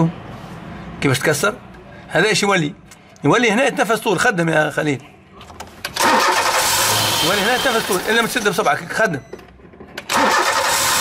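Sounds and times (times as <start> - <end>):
car engine starting and running: 5.8 - 8.6, 9.6 - 11.0.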